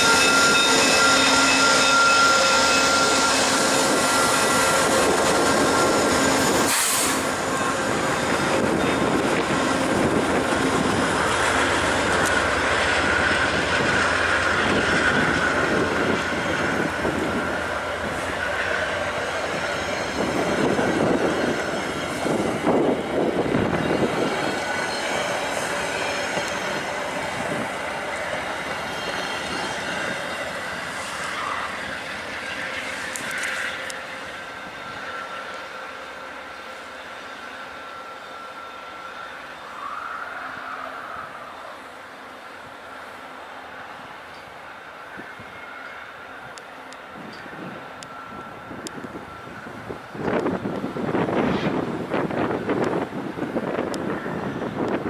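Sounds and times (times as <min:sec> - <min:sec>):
high-pitched wheel squeal: 0:00.0 - 0:42.0
train wheels rumbling on rails: 0:00.0 - 0:55.0.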